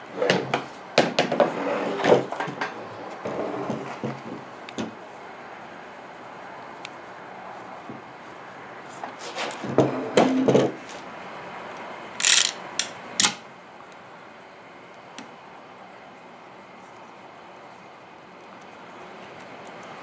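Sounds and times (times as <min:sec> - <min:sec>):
knocks and scrapes of tools: 0:00.2 - 0:04.9.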